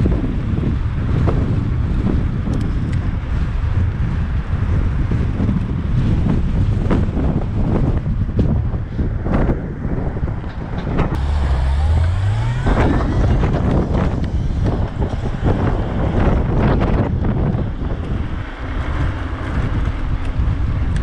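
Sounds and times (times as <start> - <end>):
bicycle road rumble: 0.0 - 21.0
wind buffeting microphone: 0.0 - 21.0
vehicle engine accelerating: 10.8 - 21.0.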